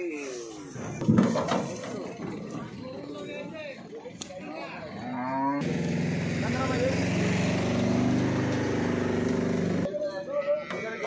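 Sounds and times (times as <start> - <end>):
people's voices: 0.0 - 7.7
vehicle engine running: 5.6 - 9.9.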